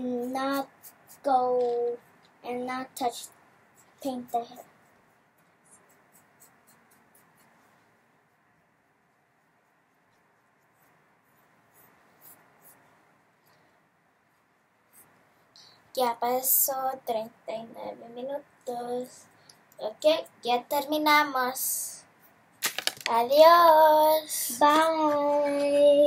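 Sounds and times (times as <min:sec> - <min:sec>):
person speaking: 0:00.0 - 0:04.9, 0:15.9 - 0:26.0
paintbrushes scratching a statue: 0:00.0 - 0:13.1, 0:14.2 - 0:17.0.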